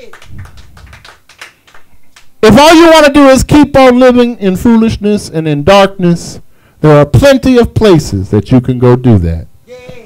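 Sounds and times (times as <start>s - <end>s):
people clapping quietly: 0.0s - 2.4s.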